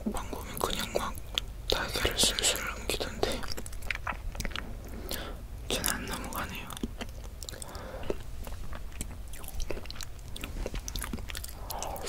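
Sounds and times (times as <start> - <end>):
chewing egg: 0.6 - 12.0.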